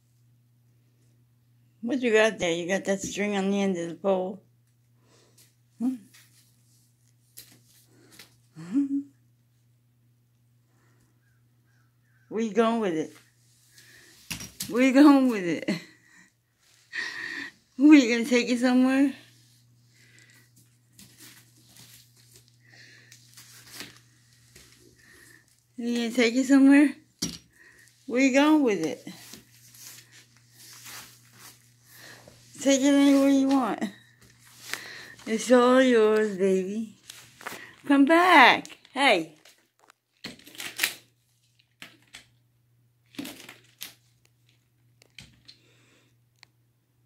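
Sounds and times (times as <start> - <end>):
low steady hum: 0.0 - 47.0
quiet rustling and crinkling: 4.6 - 8.4, 19.2 - 26.2, 27.5 - 40.2.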